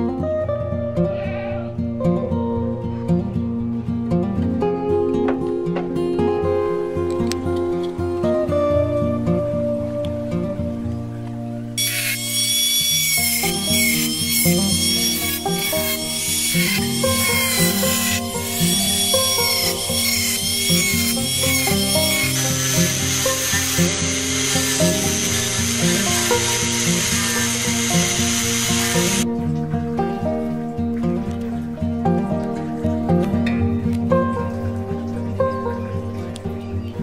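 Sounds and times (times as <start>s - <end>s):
background music: 0.0s - 37.0s
rotary tool cutting plastic: 11.8s - 29.2s.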